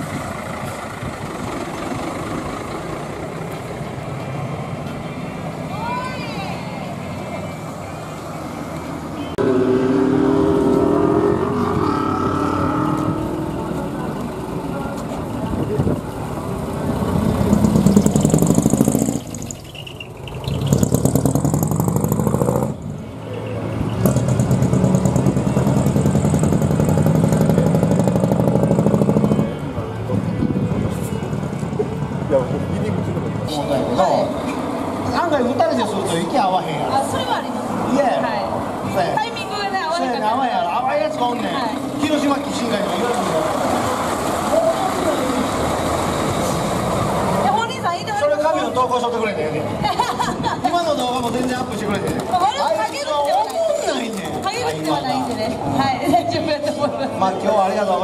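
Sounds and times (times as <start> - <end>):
diesel trucks pulling away: 0.0 - 58.0
people's voices: 4.8 - 19.4, 29.0 - 58.0.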